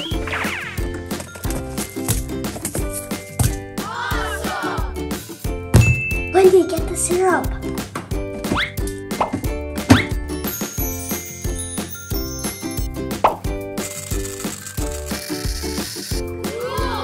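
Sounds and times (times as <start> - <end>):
rising bloop sound effects: 0.0 - 0.9
upbeat children's music: 0.0 - 14.0, 14.8 - 17.0.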